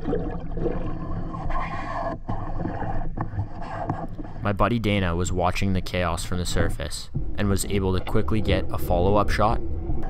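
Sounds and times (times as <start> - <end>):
underwater water rushing: 0.0 - 1.6
steady low hum: 1.2 - 10.0.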